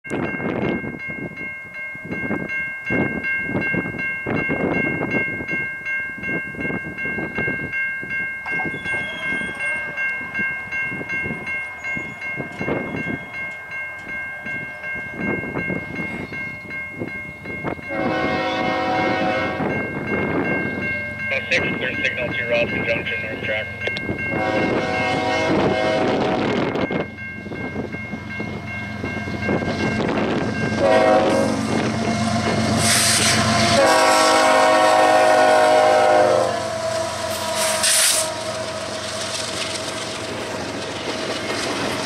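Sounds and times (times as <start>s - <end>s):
level-crossing warning bell: 0.1s - 42.0s
wind buffeting microphone: 0.1s - 42.0s
locomotive air horn: 17.9s - 19.7s, 24.3s - 26.4s, 30.8s - 39.0s.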